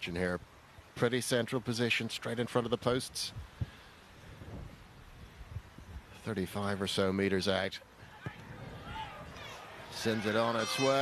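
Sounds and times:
faint distant voices: 7.8s - 11.0s.

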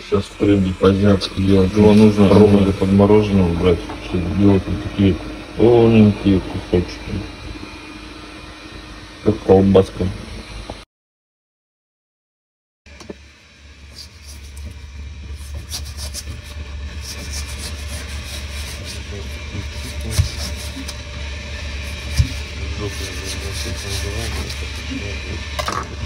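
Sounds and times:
steady low hum: 0.0s - 10.8s, 12.9s - 26.0s.

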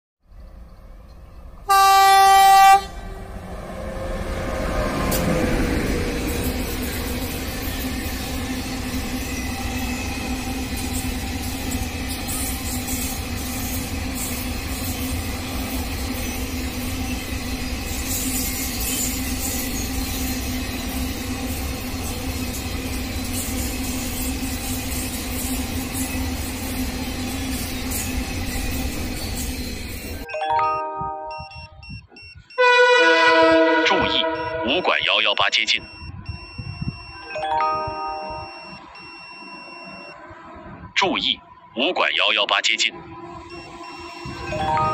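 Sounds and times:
train wheels rumbling on rails: 0.3s - 30.3s
train horn blast: 1.6s - 3.3s, 32.6s - 34.8s.

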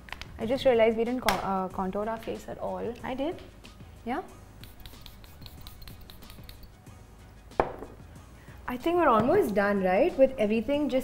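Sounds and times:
sharp knock: 7.6s - 8.0s.

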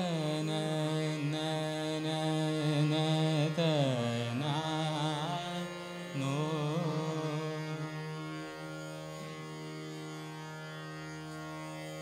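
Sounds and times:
man singing long held notes: 0.0s - 8.4s
harmonium: 0.0s - 12.0s
tanpura drone: 0.0s - 12.0s.

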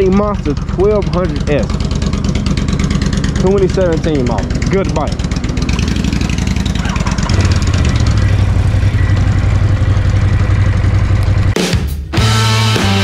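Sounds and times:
motorcycle engine idling: 0.0s - 11.6s
rock music: 4.5s - 13.0s.

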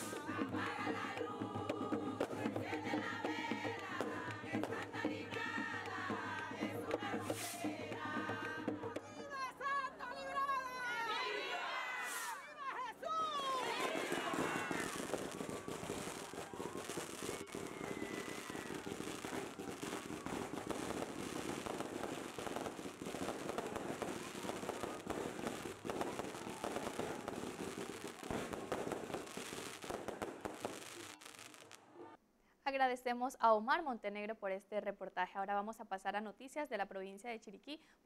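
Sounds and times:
fireworks crackling and popping: 0.0s - 2.5s, 3.1s - 8.5s, 12.0s - 12.4s, 13.2s - 32.0s
crowd voices: 7.2s - 7.8s, 8.9s - 21.1s
people shouting: 8.9s - 21.5s, 23.1s - 28.5s.

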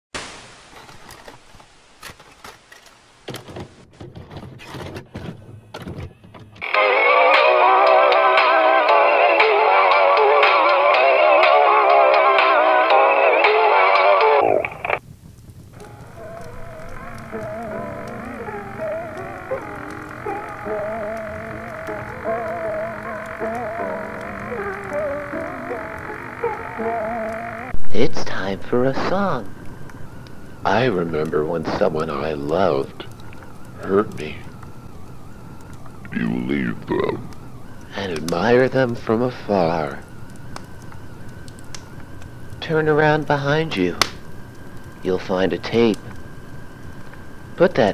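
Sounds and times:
warbling distorted tape sound: 0.2s - 3.8s, 6.6s - 47.9s
singing music: 6.6s - 15.0s, 15.8s - 27.8s
thin wavering high whine: 6.6s - 15.0s, 15.7s - 47.9s
faint clicks: 14.3s - 27.7s, 32.5s - 36.2s, 40.0s - 42.6s, 45.9s - 47.3s
low hum: 14.4s - 43.3s.

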